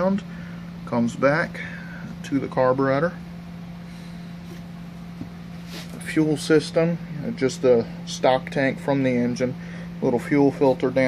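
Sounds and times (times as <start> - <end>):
steady low hum: 0.0 - 11.0
short breath: 9.6 - 10.0.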